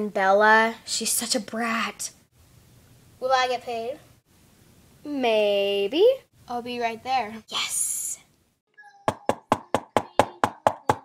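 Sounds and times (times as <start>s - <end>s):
rapid knocking on door: 9.1s - 11.0s.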